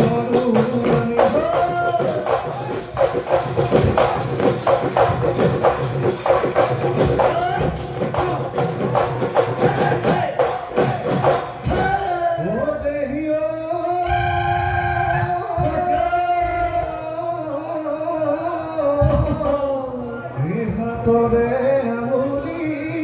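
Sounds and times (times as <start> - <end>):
dhol drums and cymbals: 0.0 - 12.3.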